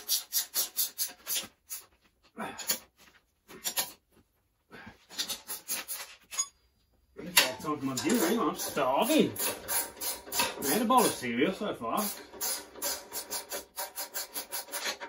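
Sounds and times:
ratchet spanner rasping: 0:00.0 - 0:01.9, 0:05.1 - 0:06.5, 0:07.3 - 0:11.2, 0:12.0 - 0:15.0.

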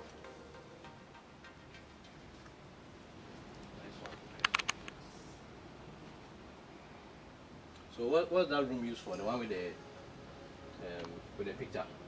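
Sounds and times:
low room hiss: 0:00.0 - 0:12.0
sharp clicks: 0:04.4 - 0:05.0.

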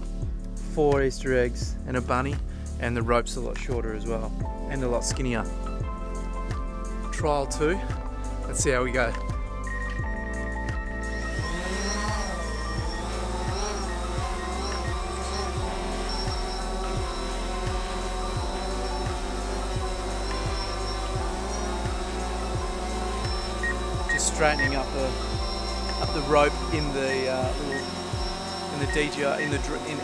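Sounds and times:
music with a steady beat: 0:00.0 - 0:30.0
drone rotors whining: 0:09.6 - 0:30.0.

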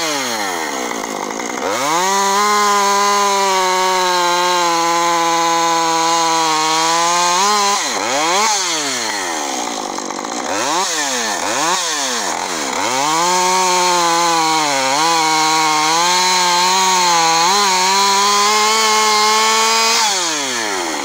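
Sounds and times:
chainsaw revving and cutting log: 0:00.0 - 0:21.0.

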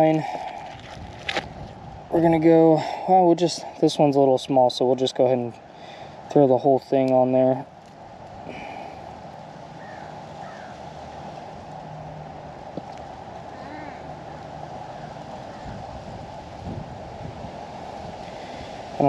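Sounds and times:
wind blowing: 0:00.0 - 0:19.0.

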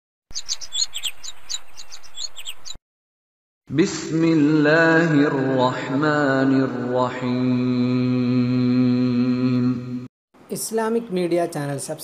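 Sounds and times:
small birds chirping: 0:00.3 - 0:02.8.

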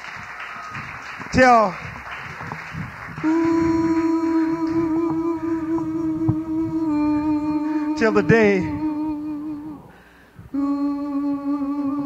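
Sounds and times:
voice humming held note: 0:03.0 - 0:12.0.

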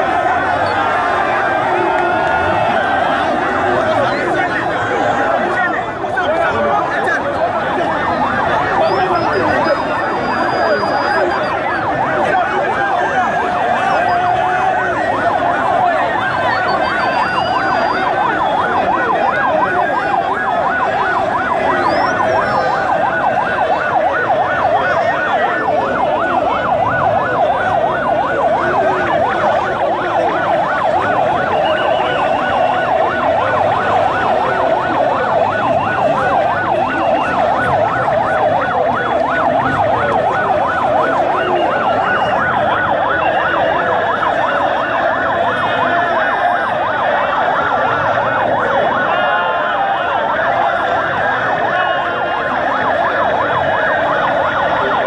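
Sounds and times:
crowd of voices: 0:00.0 - 0:55.0
warbling electronic siren: 0:00.0 - 0:55.0.

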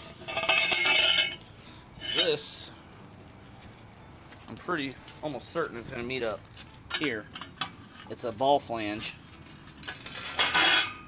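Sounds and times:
metal pipes clattering and ringing: 0:00.0 - 0:02.5, 0:06.9 - 0:11.0.

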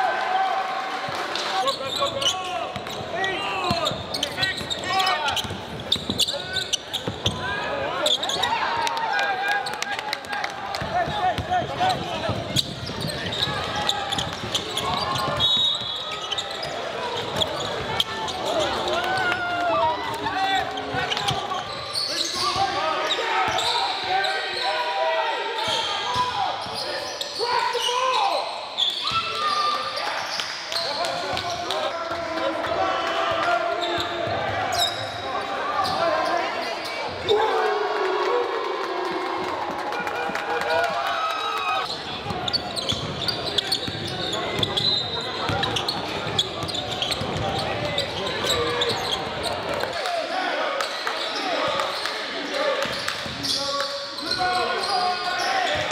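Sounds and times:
people shouting and chattering: 0:00.0 - 0:55.9.

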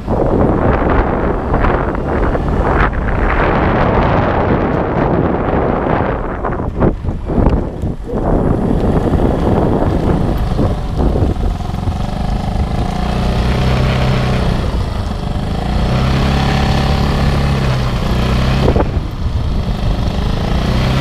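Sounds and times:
road and wind noise: 0:00.0 - 0:21.0
motor scooter engine running: 0:07.4 - 0:21.0.

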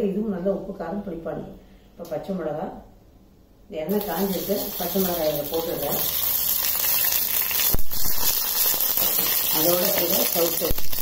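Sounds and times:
chillies sizzling in hot oil: 0:03.9 - 0:11.0.

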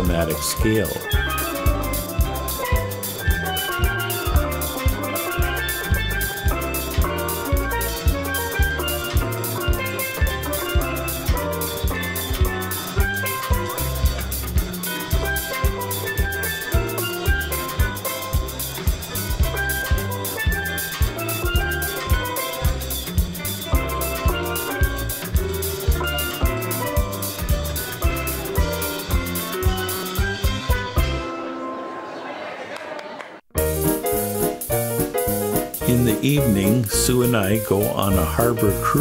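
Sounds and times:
bass and drum beat: 0:00.0 - 0:31.2, 0:33.6 - 0:39.0
steel pan melody: 0:00.0 - 0:31.7, 0:33.6 - 0:39.0.

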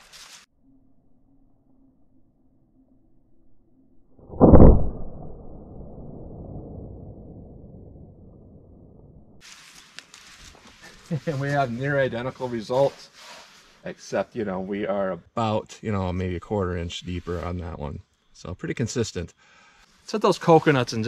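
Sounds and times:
slowed-down air rifle shot boom: 0:04.2 - 0:09.4.

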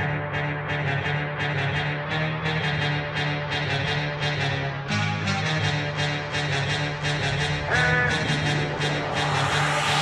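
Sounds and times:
low hum: 0:06.9 - 0:10.0
rushing noise: 0:07.0 - 0:10.0.

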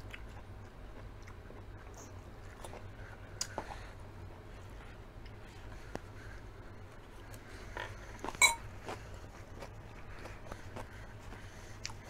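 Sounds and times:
chewing salad: 0:00.0 - 0:03.9, 0:06.9 - 0:12.0.

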